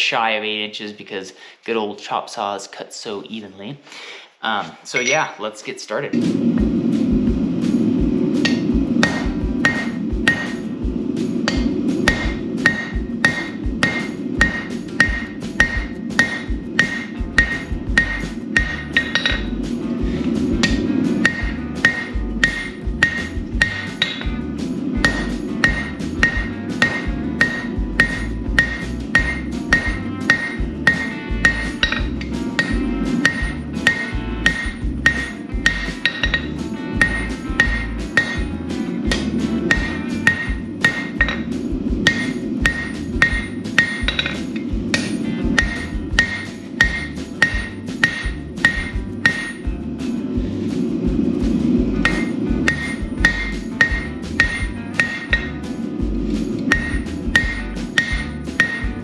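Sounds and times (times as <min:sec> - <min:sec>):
hammer striking steel on anvil: 0:08.4 - 0:19.7, 0:20.4 - 0:50.2, 0:52.0 - 0:59.0.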